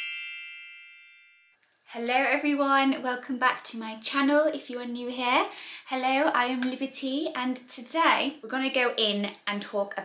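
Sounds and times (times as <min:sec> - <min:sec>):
bright bell-like chime: 0:00.0 - 0:01.6.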